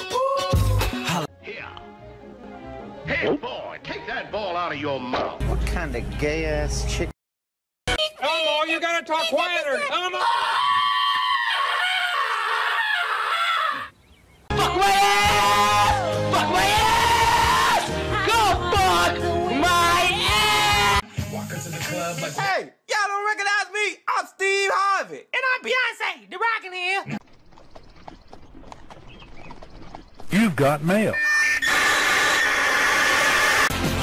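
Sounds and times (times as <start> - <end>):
horse hooves clip-clopping: 27.2 - 30.4
high-pitched voice screaming: 31.2 - 33.7.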